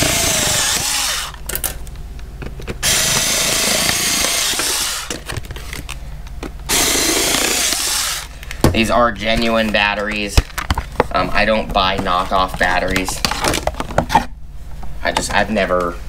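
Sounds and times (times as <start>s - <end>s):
rotary cutter motor running: 0.0s - 1.4s, 2.8s - 5.2s, 6.7s - 8.3s.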